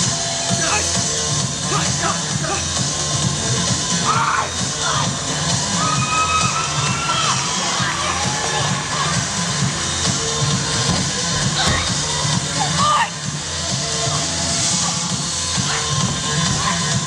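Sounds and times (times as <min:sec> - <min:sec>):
background music: 0:00.0 - 0:17.0
crowd noise: 0:00.0 - 0:17.0.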